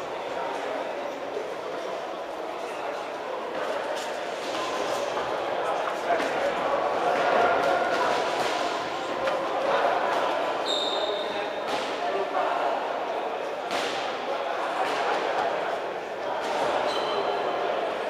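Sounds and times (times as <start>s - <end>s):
voices echoing in a hall: 0.0s - 18.0s.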